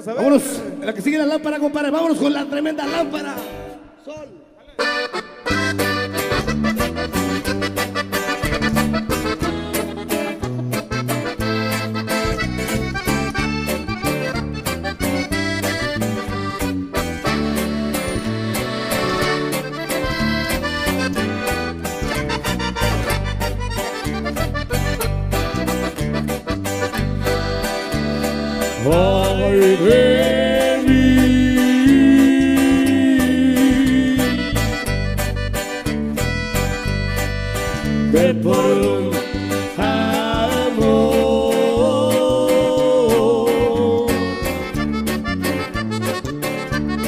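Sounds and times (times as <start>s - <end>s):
guitar: 0.0s - 47.0s
button accordion: 4.8s - 47.0s
pulsing bass line: 5.6s - 47.0s
person singing: 28.6s - 34.9s, 38.0s - 44.8s.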